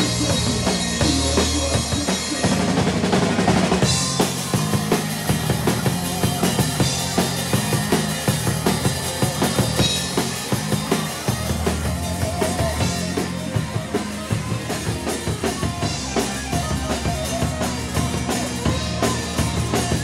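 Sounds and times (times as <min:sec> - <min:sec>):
loud drums: 0:00.0 - 0:20.0
rock band playing: 0:00.0 - 0:20.0.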